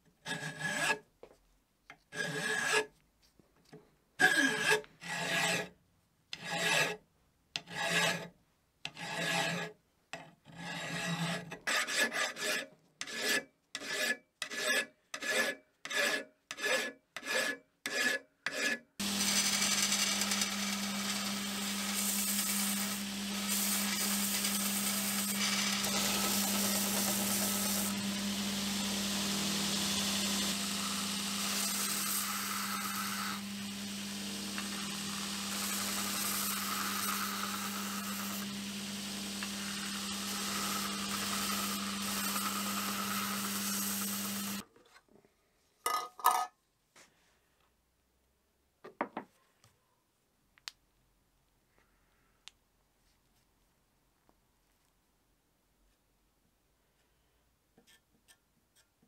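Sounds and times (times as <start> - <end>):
hand file rasping on metal: 0.2 - 1.0, 2.1 - 2.9, 4.2 - 7.0, 7.6 - 9.8, 10.4 - 44.6
belt grinder running: 19.0 - 44.6.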